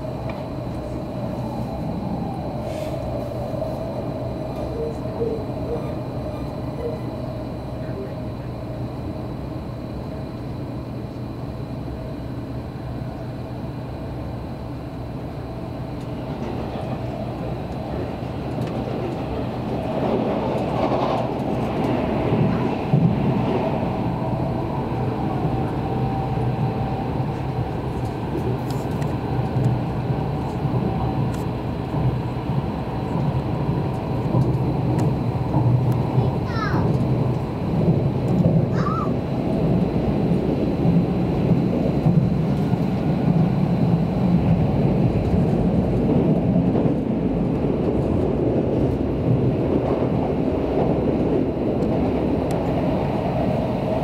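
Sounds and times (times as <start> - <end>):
passing train: 0.0 - 54.0
train wheels rumbling on rail: 0.0 - 54.0.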